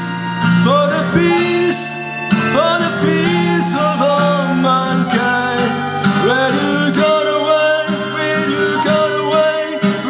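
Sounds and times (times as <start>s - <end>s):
accordion chords: 0.0s - 10.0s
acoustic guitar: 0.0s - 10.0s
person singing: 0.0s - 10.0s.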